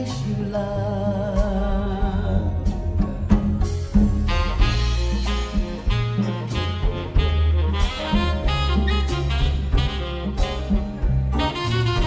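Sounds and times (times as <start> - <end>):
bass notes: 0.0 - 12.0
drums: 0.0 - 12.0
saxophone melody: 3.6 - 12.0.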